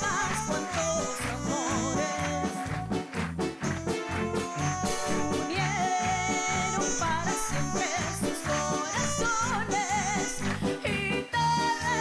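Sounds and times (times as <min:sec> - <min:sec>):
woman singing: 0:00.0 - 0:02.9, 0:04.9 - 0:12.0
live band music: 0:00.0 - 0:12.0.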